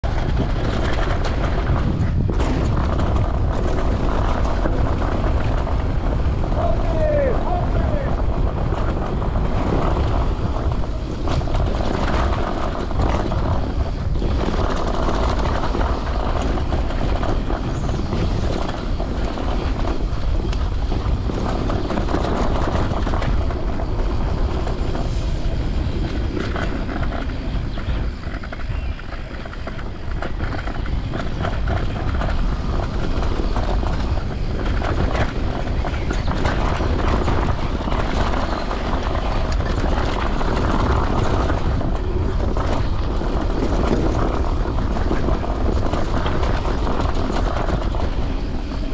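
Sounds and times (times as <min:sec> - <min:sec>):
bike clicks and rattles: 0:00.0 - 0:48.9
bike tyres on dirt: 0:00.0 - 0:48.9
wind on microphone: 0:00.0 - 0:48.9.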